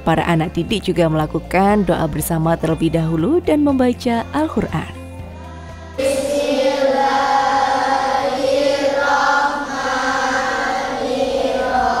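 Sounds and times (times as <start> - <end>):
soft background music: 0.0 - 12.0
children reciting in unison: 5.6 - 12.0.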